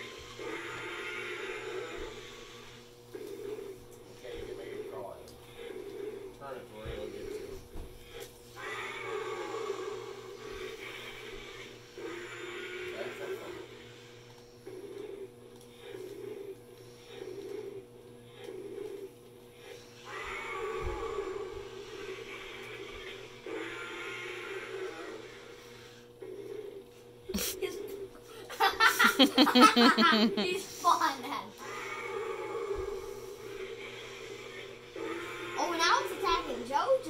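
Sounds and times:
electronic dinosaur roaring: 0.0 - 26.8, 31.6 - 36.9
toy gear motor whirring: 0.0 - 37.0.

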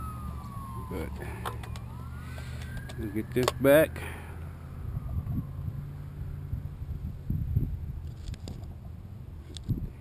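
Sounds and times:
siren wailing: 0.0 - 6.7.

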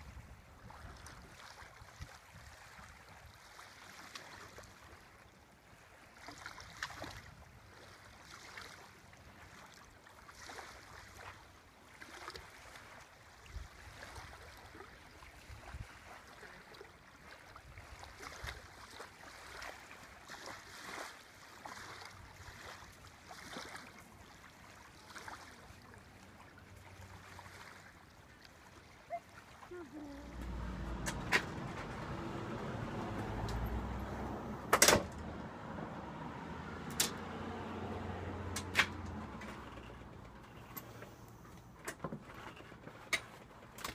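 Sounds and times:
wind rumble on microphone: 0.0 - 2.6
small waves lapping: 0.0 - 43.9.

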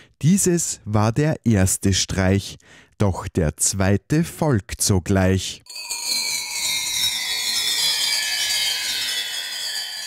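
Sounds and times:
thin falling tones: 5.7 - 10.0.

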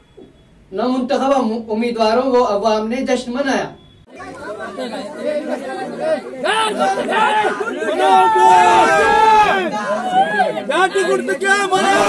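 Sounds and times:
crowd of men talking and shouting: 4.0 - 12.0.

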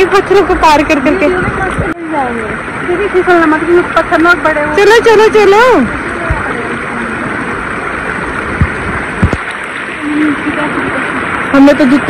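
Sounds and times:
river rushing over rocks: 0.0 - 12.0.

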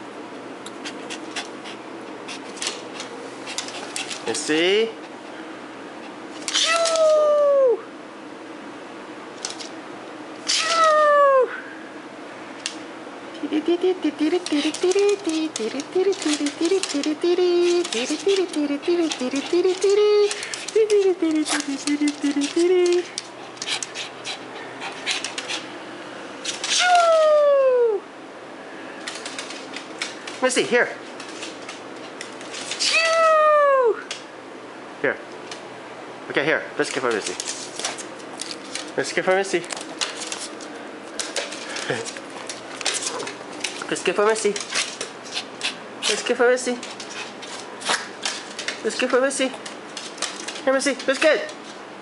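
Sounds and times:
dog whining: 6.5 - 7.9, 10.4 - 11.6, 13.4 - 25.6, 26.6 - 28.1, 32.7 - 34.1
dog whimpering: 13.4 - 25.6, 26.6 - 28.0.

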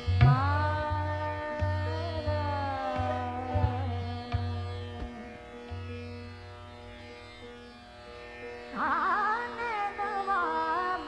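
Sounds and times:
sitar plucked notes: 0.0 - 11.0.

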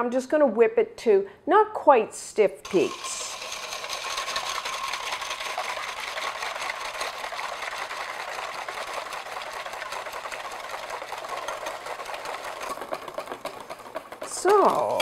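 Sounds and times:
whisk clattering in metal bowl: 2.7 - 15.0.

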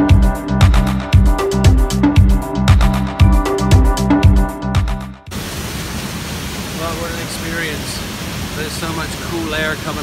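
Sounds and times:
background music: 0.0 - 5.3
waterfall rushing: 5.3 - 10.0
man speaking: 6.8 - 10.0.

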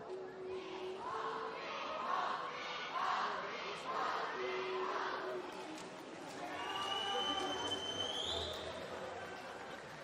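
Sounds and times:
murmur of echoing voices: 0.0 - 10.0.

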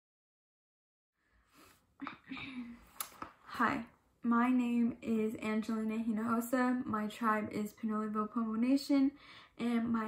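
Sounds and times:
girl talking: 3.5 - 10.0.

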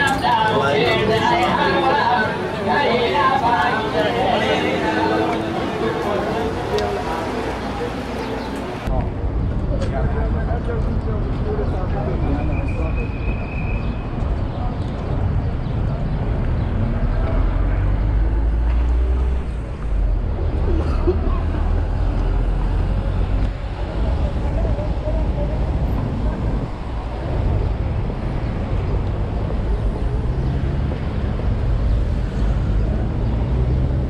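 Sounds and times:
people's voices: 0.0 - 31.6
road traffic rumble: 0.0 - 34.0.

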